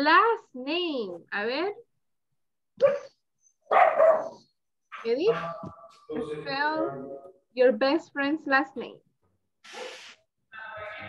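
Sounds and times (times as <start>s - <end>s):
dog barking: 2.8s - 5.9s.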